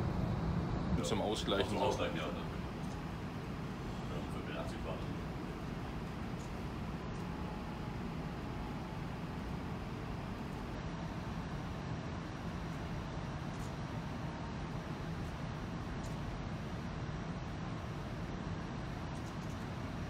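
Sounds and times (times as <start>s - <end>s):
ferry machinery rumbling with hiss: 0.0s - 20.0s.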